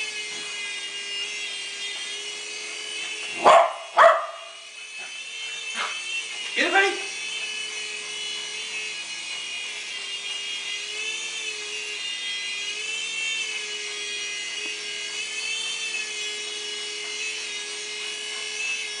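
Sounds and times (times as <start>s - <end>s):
toy helicopter motor whine: 0.0s - 19.0s.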